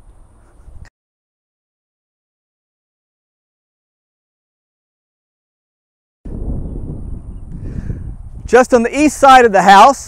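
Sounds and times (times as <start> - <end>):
wind buffeting microphone: 0.0 - 0.9, 6.3 - 10.0.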